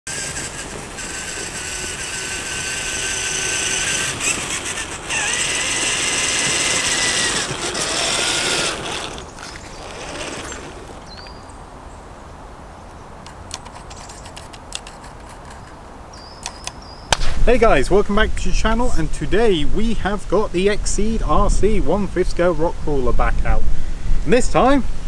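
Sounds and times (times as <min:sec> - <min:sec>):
electric motor and gears whining: 0:00.1 - 0:11.3.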